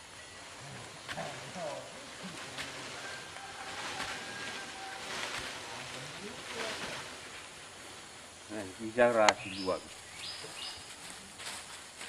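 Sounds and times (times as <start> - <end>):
men talking faintly: 0.6 - 3.2.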